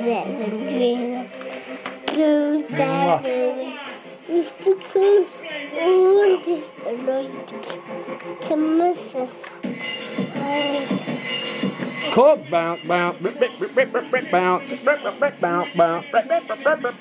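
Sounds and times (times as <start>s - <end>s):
toddler babbling sing-song: 2.1s - 7.6s, 8.4s - 9.4s, 10.4s - 11.0s.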